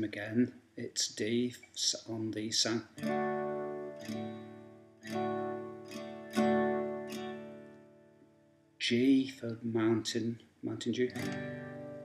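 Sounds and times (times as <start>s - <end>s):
acoustic guitar strumming: 2.9s - 9.2s, 11.1s - 12.0s.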